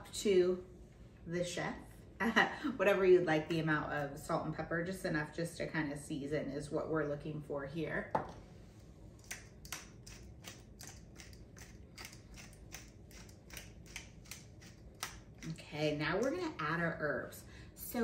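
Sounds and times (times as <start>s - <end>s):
spice grinder crunching: 9.2s - 15.6s.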